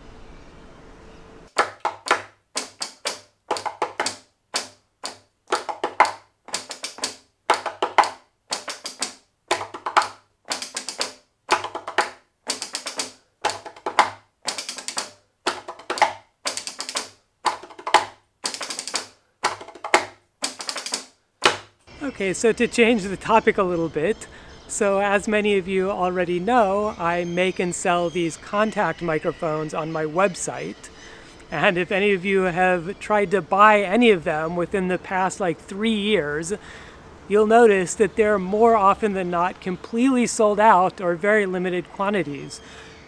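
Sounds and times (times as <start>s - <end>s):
robotic solenoid tapping: 1.5s - 21.7s
hand tapping on wooden stool: 1.6s - 21.7s.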